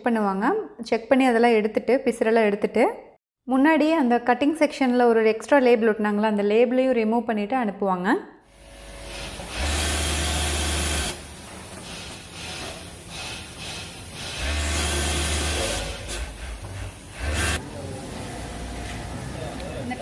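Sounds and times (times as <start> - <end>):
sewing machine stitching: 8.9 - 11.2, 11.8 - 17.6.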